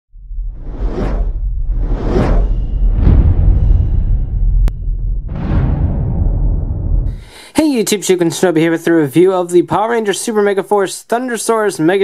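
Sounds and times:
deep rumble: 0.1s - 7.3s
cinematic whoosh: 0.2s - 7.3s.

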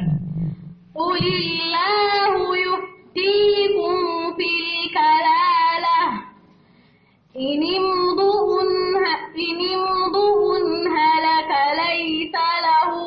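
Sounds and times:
woman reciting melodically: 0.9s - 6.6s, 7.2s - 13.0s.

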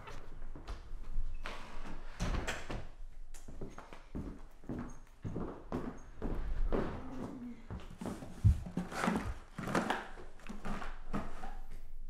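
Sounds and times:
footsteps on hardwood floor: 3.1s - 11.3s.

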